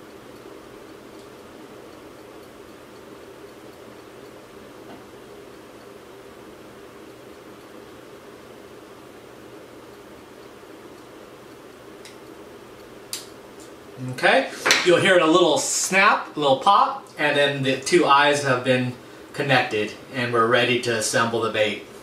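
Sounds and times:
room tone hiss: 0:00.0 - 0:22.0.

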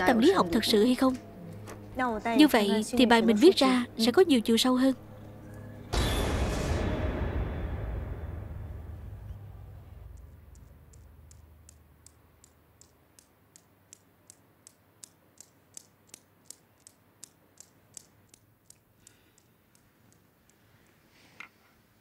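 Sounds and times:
steel balls clicking: 0:10.0 - 0:21.1.

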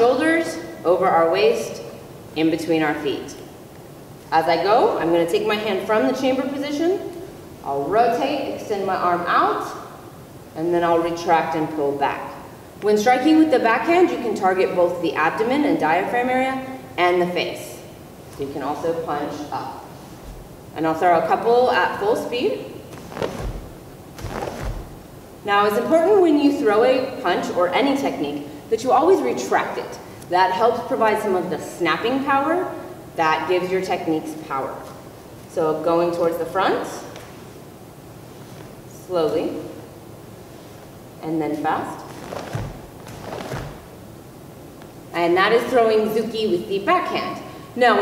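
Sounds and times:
sleeve swishing: 0:19.8 - 0:20.6, 0:22.8 - 0:25.1, 0:38.2 - 0:38.9, 0:42.0 - 0:44.0.

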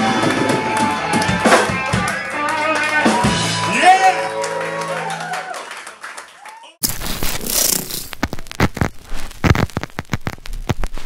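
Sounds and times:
static crackles and clicks: 0:06.8 - 0:11.0.

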